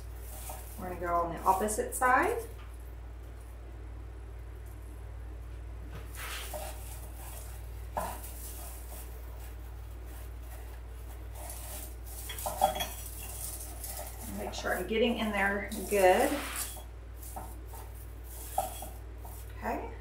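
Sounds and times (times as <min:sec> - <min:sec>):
artificial pine rustling: 0:00.0 - 0:20.0.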